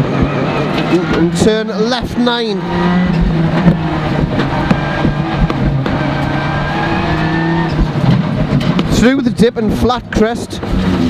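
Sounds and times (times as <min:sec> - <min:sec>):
rally car engine running hard: 0:00.0 - 0:11.0.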